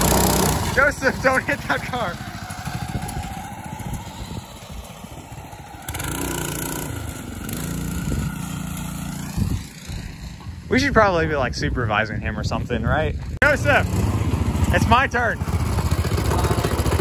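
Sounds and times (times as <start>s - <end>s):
go-kart engine running: 0.0s - 10.7s, 13.4s - 17.0s.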